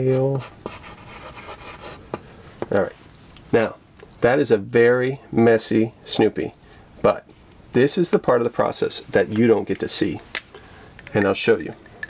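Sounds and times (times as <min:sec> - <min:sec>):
pencil scratching on paper: 0:00.0 - 0:02.2.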